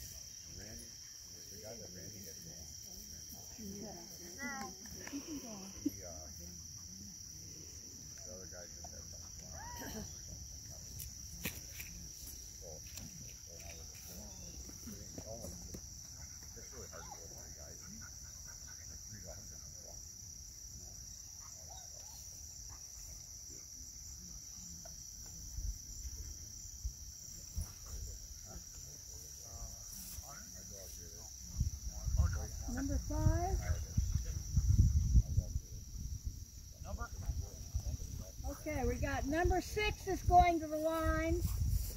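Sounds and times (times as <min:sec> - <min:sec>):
faint distant voices: 0:00.0 - 0:41.9
field crickets chirring: 0:00.0 - 0:41.9
wind rumble on microphone: 0:31.5 - 0:41.9.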